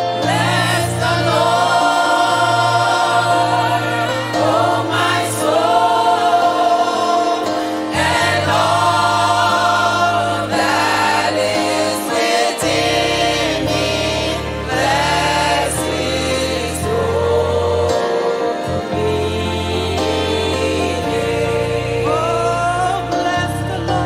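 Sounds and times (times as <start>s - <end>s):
choir singing gospel song: 0.0s - 24.0s.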